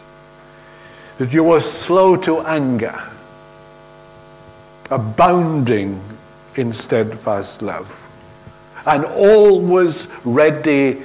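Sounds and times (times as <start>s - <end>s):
electrical hum: 0.0s - 11.0s.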